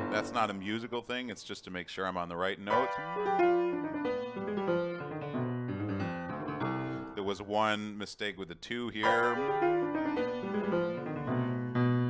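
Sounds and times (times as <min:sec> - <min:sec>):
grand piano playing: 0:00.0 - 0:01.4, 0:02.6 - 0:07.8, 0:08.9 - 0:12.0.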